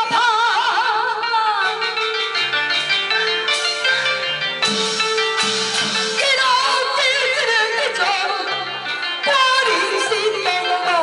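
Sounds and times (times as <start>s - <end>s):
woman singing opera aria: 0.0s - 2.0s, 6.2s - 11.0s
instrumental accompaniment: 0.0s - 11.0s.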